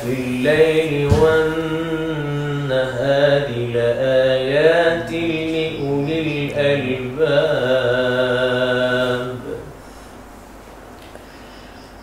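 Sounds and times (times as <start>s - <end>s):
man reciting melodically: 0.0s - 9.8s.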